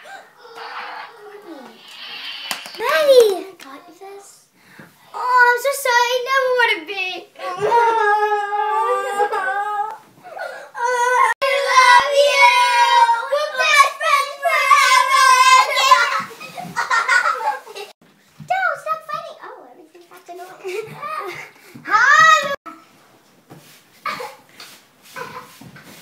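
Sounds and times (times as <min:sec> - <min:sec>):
girl's wavering wordless voice: 0:07.4 - 0:10.0.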